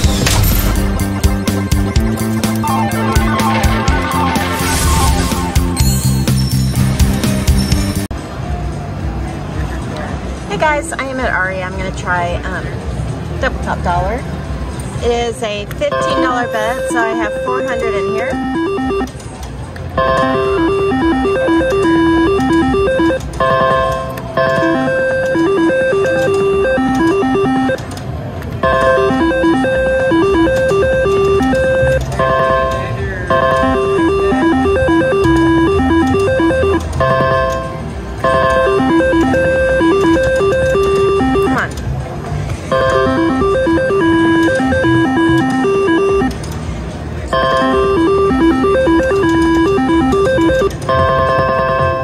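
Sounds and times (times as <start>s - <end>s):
slot machine beeping spin tune: 0.0s - 8.1s, 15.8s - 19.2s, 19.9s - 27.9s, 28.6s - 41.7s, 42.6s - 46.4s, 47.2s - 52.0s.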